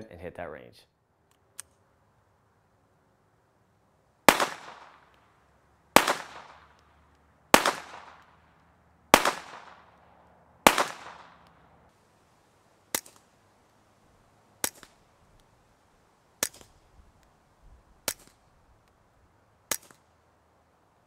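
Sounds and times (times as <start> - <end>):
pistol shots with echo: 4.3 - 5.2, 6.0 - 11.6.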